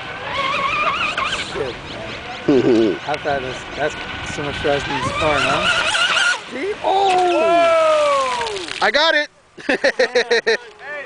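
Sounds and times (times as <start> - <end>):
model boat motor whining: 0.0 - 7.8.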